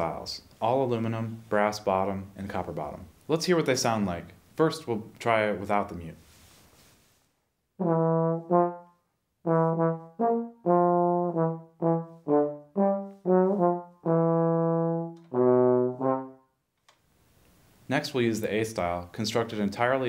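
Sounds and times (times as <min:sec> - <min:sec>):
trombone phrase: 0:07.8 - 0:16.4.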